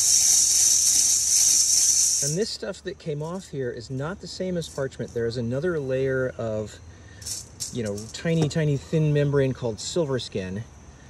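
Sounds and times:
coffee beans rattling in metal colander: 0.0s - 2.4s, 7.2s - 8.4s.

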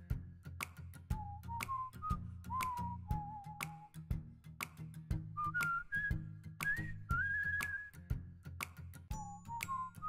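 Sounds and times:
light steady beat: 0.0s - 10.0s
whistled melody: 1.1s - 4.1s, 5.2s - 8.2s, 9.1s - 10.0s.

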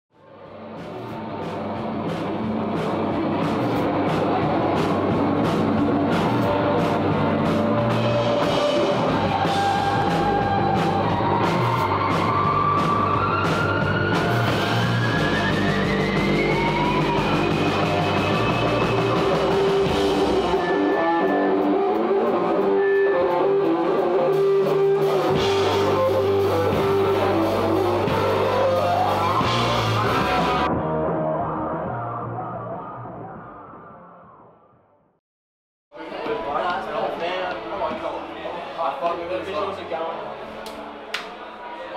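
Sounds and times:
electric guitar gliding upward: 0.4s - 33.8s
rock band music: 0.4s - 33.8s.

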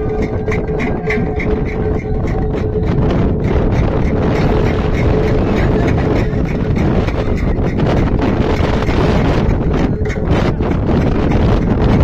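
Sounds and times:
thin steady tone: 0.0s - 11.6s
wind buffeting microphone: 0.0s - 12.0s.

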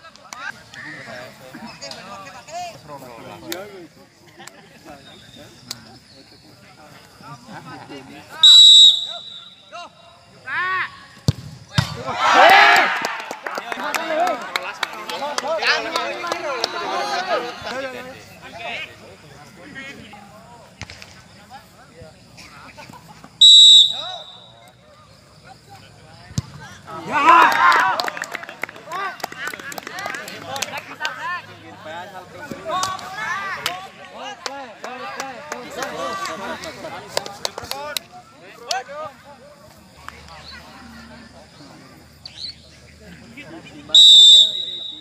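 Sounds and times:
spectators shouting: 12.0s - 13.3s
excited voices: 12.0s - 18.8s, 26.9s - 31.8s.

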